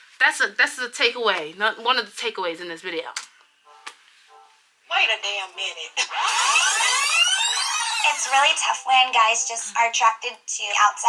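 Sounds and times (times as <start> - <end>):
tape rewind whoosh: 6.0 - 8.7.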